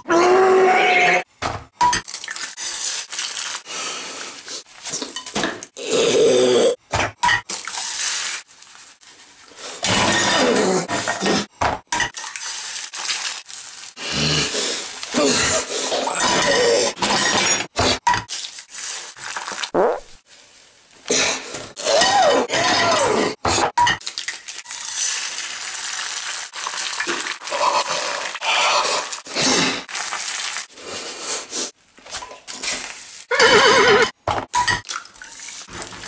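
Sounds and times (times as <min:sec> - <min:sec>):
horse whinny: 0:33.3 - 0:34.1.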